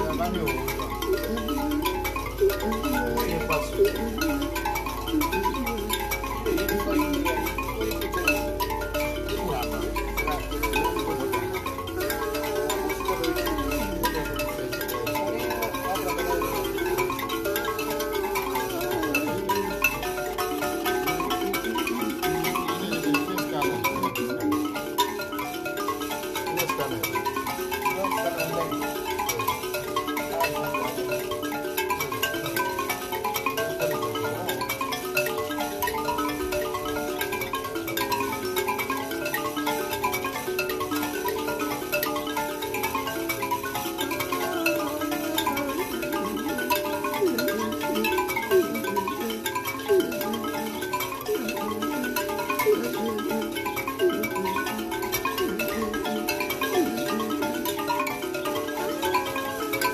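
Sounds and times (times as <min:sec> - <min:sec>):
man singing: 0:00.0 - 0:25.4, 0:26.1 - 0:59.9
thumb pianos plucked: 0:00.0 - 0:59.9.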